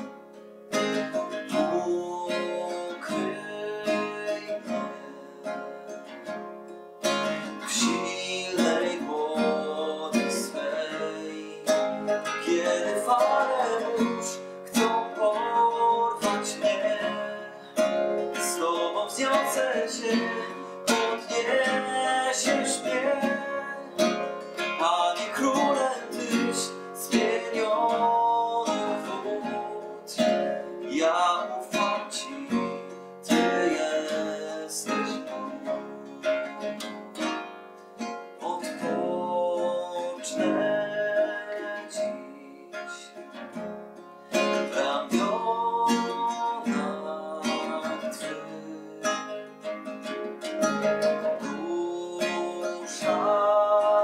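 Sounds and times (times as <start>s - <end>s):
strummed nylon-string guitar: 0.0s - 54.0s
man singing: 0.7s - 6.4s, 7.0s - 37.3s, 38.4s - 43.6s, 44.3s - 54.0s.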